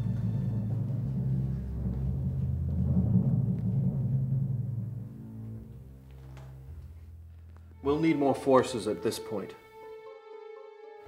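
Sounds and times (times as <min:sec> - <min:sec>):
rolling drum: 0:00.0 - 0:08.4
low sustained film score: 0:00.0 - 0:10.1.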